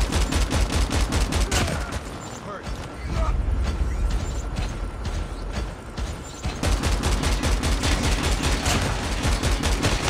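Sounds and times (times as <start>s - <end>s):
rapid minigun fire: 4.2s - 10.0s.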